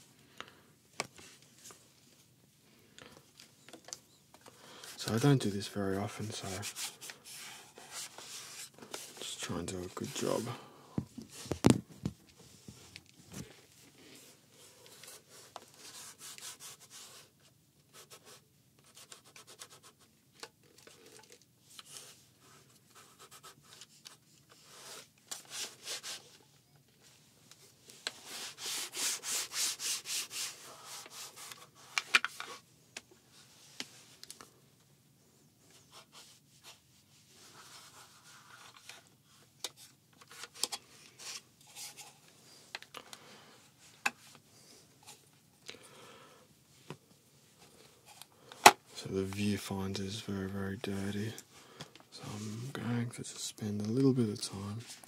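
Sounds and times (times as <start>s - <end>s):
cloth rubbing on plastic: 28.2s - 31.8s.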